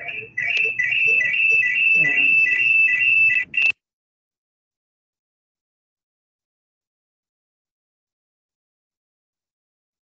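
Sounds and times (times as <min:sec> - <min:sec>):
high-pitched electronic tone: 0:00.0 - 0:03.7
pulsing lower tone: 0:00.0 - 0:03.7.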